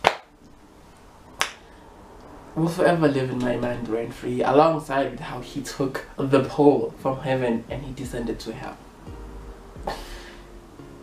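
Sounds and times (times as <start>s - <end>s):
finger snaps: 1.4s - 1.6s.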